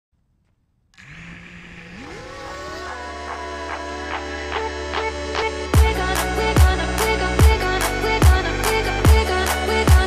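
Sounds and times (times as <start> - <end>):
tone gliding upward: 1.0 - 4.6
steady bass: 1.0 - 10.0.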